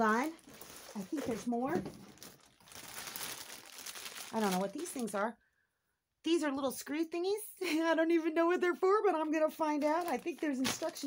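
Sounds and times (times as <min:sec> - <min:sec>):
packaging crinkling and rustling: 0:00.0 - 0:05.2, 0:09.8 - 0:11.0.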